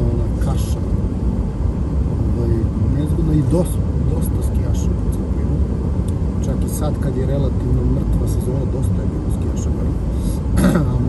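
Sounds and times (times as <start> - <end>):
tyre and engine noise in car: 0.0 - 11.0.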